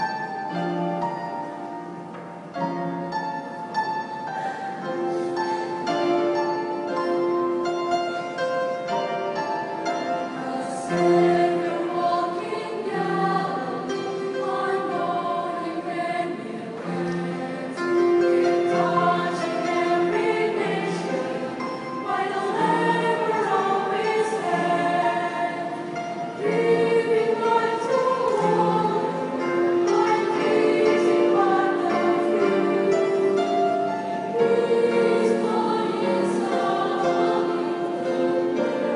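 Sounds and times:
choir singing in harmony: 0.0 - 38.9.

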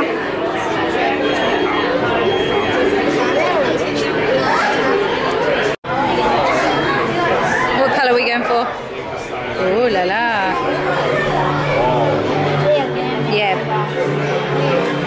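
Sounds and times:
voices chattering indoors: 0.0 - 15.0.

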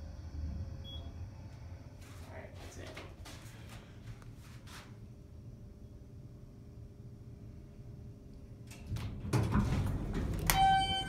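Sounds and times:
low rumble: 0.0 - 2.2
elevator arrival chime: 10.4 - 11.0.

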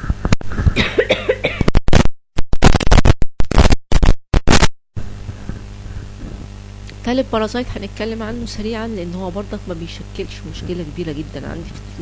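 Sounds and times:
man clearing his throat: 0.8 - 1.7
man coughing: 0.8 - 1.7
loud sharp crackles: 1.8 - 4.7.

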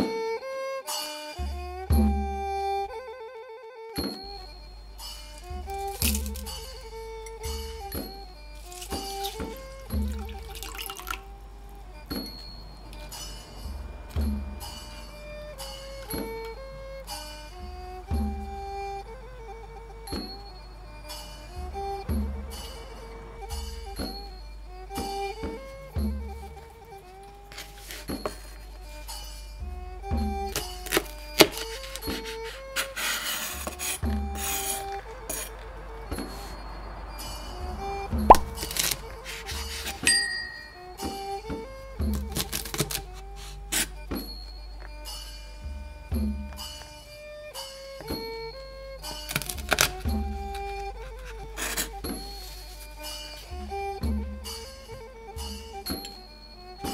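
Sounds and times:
background music: 0.0 - 56.9
water pouring into a bowl: 9.2 - 11.3
knife slicing green beans: 30.6 - 35.5, 42.1 - 43.9.

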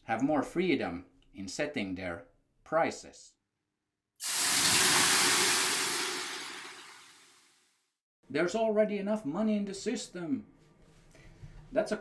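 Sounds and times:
steam hissing on hot stones: 4.2 - 7.2.

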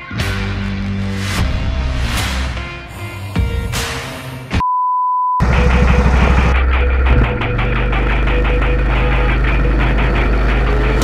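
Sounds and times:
loud music with held bass notes: 5.4 - 11.0
go-kart engines running: 7.5 - 11.0.

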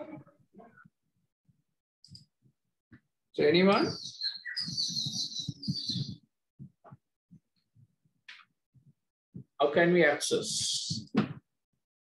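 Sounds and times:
bird chirping in trills: 3.8 - 6.3.

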